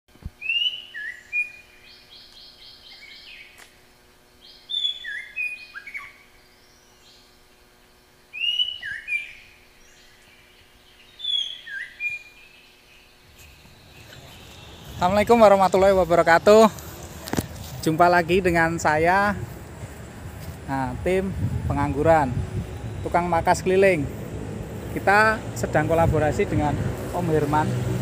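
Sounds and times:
faint steady hum: 0.1s - 27.8s
songbird singing: 0.4s - 28.0s.

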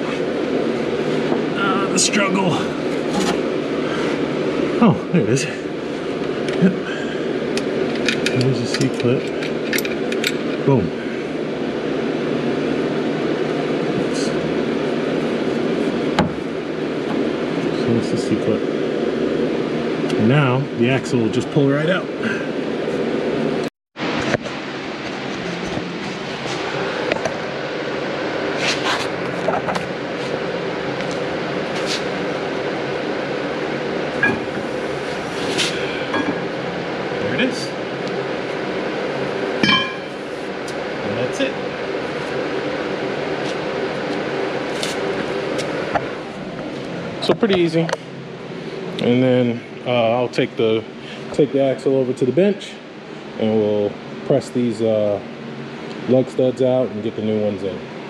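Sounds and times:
machinery humming: 0.0s - 58.0s.

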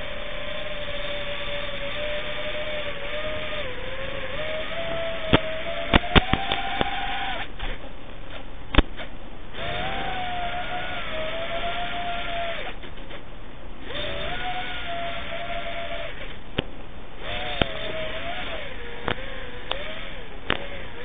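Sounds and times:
drone motors whining: 0.0s - 13.2s, 13.8s - 21.0s
sharp clicks: 5.3s - 7.7s.

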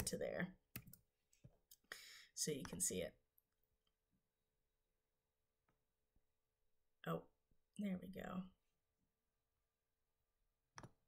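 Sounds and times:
computer mouse clicks: 0.8s - 1.0s.

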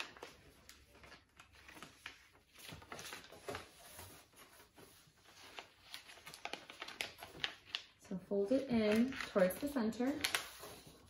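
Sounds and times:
paper being folded and creased: 0.0s - 11.0s.

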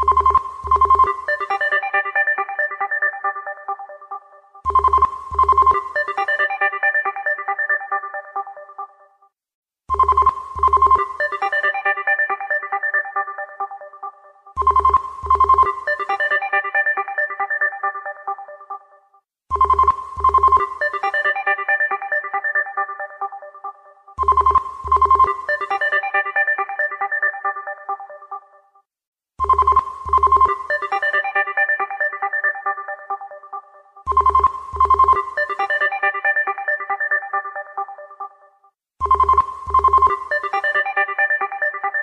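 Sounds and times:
musical phone ringtone: 0.0s - 9.0s, 9.9s - 13.9s, 14.6s - 18.8s, 19.6s - 28.5s, 29.4s - 38.4s, 39.0s - 42.0s.

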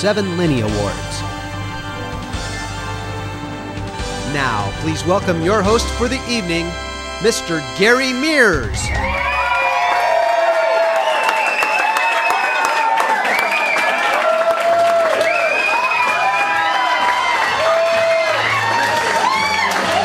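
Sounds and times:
repeating bass line: 0.0s - 9.8s
music: 0.0s - 10.2s, 14.9s - 20.0s
audience cheering and whooping: 8.6s - 20.0s
people clapping: 9.1s - 20.0s.

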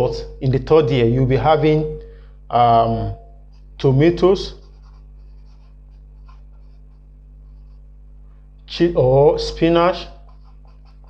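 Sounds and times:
steady low hum: 0.0s - 11.0s
marker squeaking on whiteboard: 3.4s - 8.0s, 10.0s - 11.0s.

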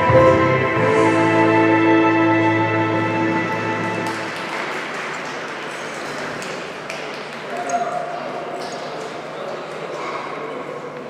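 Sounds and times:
music held chord: 0.0s - 4.3s
crowd clapping: 3.8s - 9.8s.

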